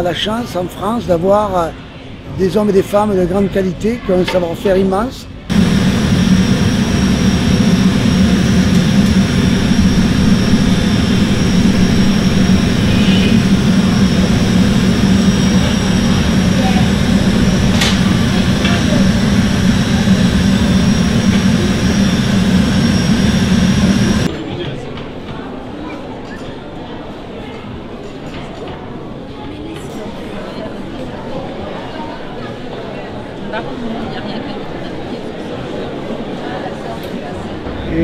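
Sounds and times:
gas furnace burner roaring: 5.4s - 24.3s.

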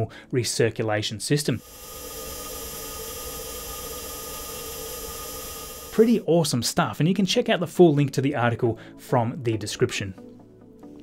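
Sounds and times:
pump whirring with hiss: 1.5s - 6.3s.

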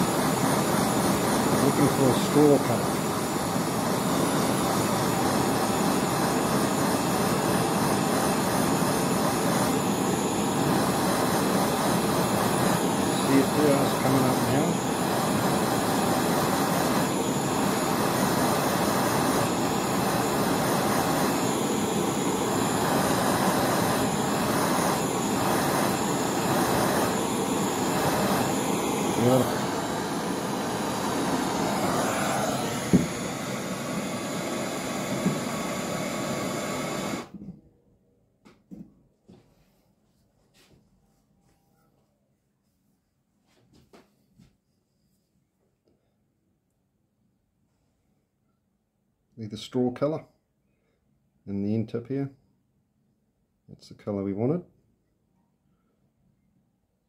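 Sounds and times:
gas torch flame: 0.0s - 37.5s.

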